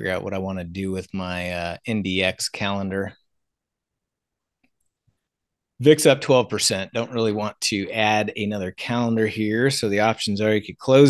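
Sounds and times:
man speaking: 0:00.0 - 0:03.2, 0:05.8 - 0:11.0.

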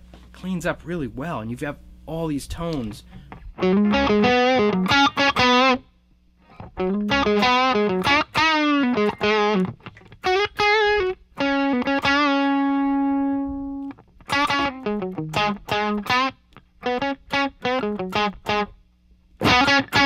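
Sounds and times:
overdriven electric guitar lead: 0:03.4 - 0:05.8, 0:06.5 - 0:18.8, 0:19.4 - 0:20.0.

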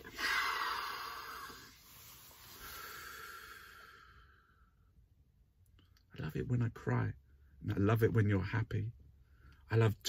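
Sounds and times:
man breathing into cupped hands: 0:00.0 - 0:04.8.

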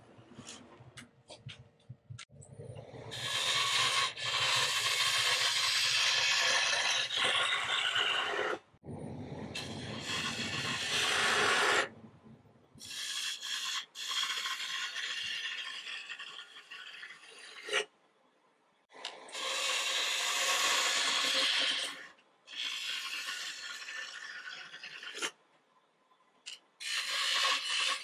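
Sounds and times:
gouge cutting wood on lathe: 0:03.2 - 0:08.6.

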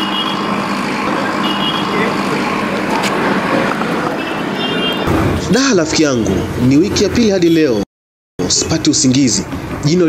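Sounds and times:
vehicle engine hum: 0:00.0 - 0:07.4
street traffic: 0:00.0 - 0:10.0.

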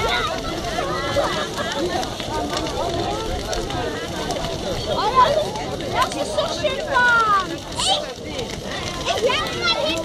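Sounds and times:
bonfire crackling: 0:00.0 - 0:10.0
fire popping: 0:00.0 - 0:10.0
people chattering: 0:00.0 - 0:10.0.

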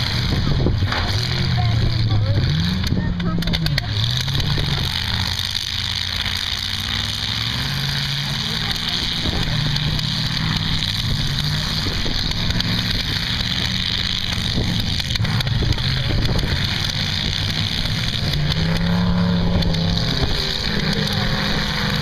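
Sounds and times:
car engines revving: 0:00.0 - 0:22.0.

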